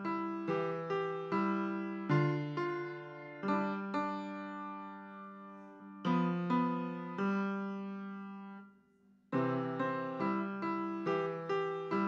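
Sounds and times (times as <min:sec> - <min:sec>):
piano chords played slowly: 0:00.0 - 0:08.7, 0:09.3 - 0:12.0.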